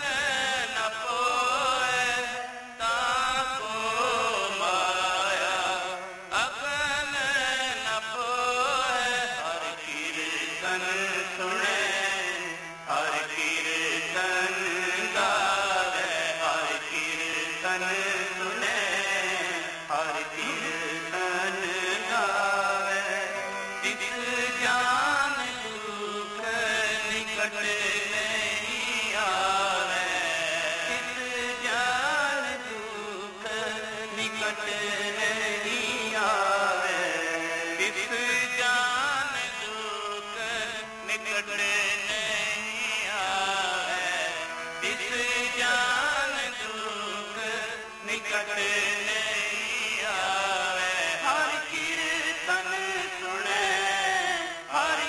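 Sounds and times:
harmonium: 0:00.0 - 0:55.0
men singing a hymn: 0:00.0 - 0:55.0
tabla: 0:00.0 - 0:55.0.

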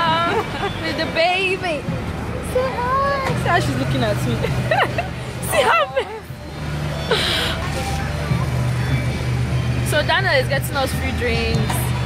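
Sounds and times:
voices talking: 0:00.0 - 0:12.0.

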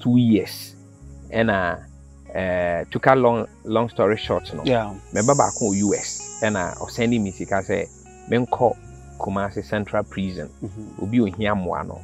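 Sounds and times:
man talking: 0:00.0 - 0:00.7, 0:01.3 - 0:12.0
high insect trill: 0:00.0 - 0:12.0.

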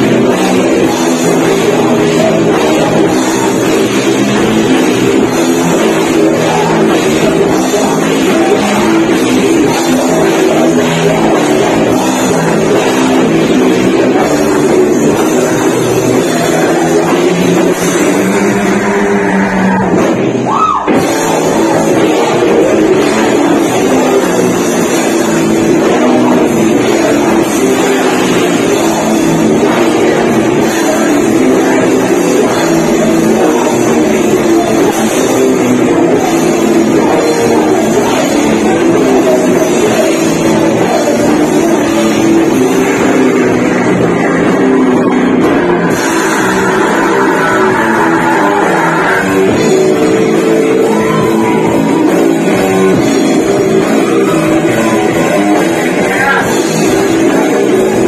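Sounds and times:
heavy metal band playing: 0:00.0 - 0:58.0.

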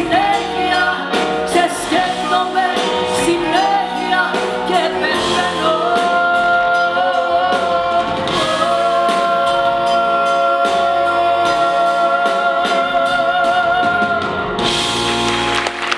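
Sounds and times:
live pop band with drums: 0:00.0 - 0:15.9.

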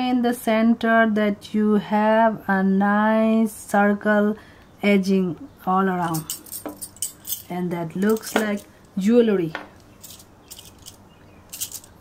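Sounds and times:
bright bangle clink: 0:06.0 - 0:08.7, 0:09.8 - 0:12.0
metal bangles jingling: 0:06.0 - 0:09.0, 0:09.8 - 0:12.0.

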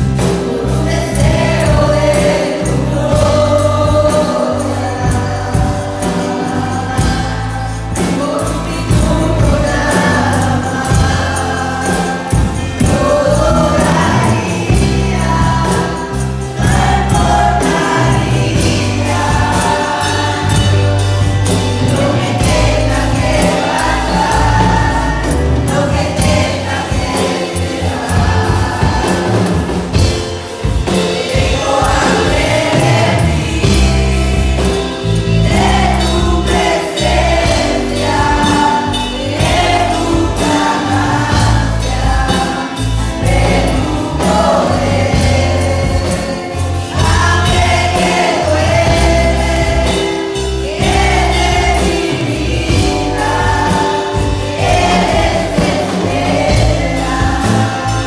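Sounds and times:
band with steady beat: 0:00.0 - 0:58.0
congregation singing: 0:00.0 - 0:58.0
singers on microphones: 0:00.0 - 0:58.0.

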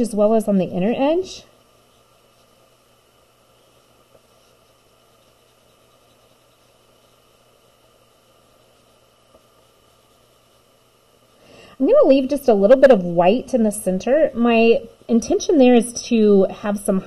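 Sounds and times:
faint hiss and hum: 0:00.0 - 0:17.0.

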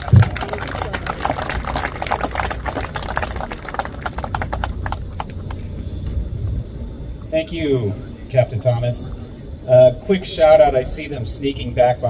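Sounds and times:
low thump: 0:00.0 - 0:00.5
crowd applause: 0:00.0 - 0:05.8.

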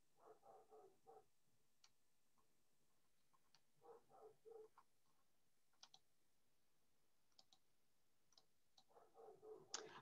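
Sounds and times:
computer mouse clicks: 0:03.4 - 0:03.7, 0:05.8 - 0:06.1, 0:07.3 - 0:07.7, 0:08.3 - 0:08.9, 0:09.6 - 0:10.0.

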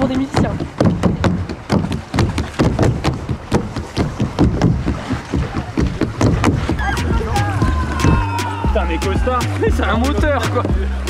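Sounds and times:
sharp taps and knocks: 0:00.0 - 0:06.8.

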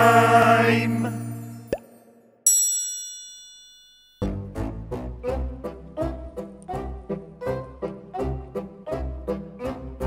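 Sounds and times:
bright bell-like ding: 0:02.5 - 0:04.3.

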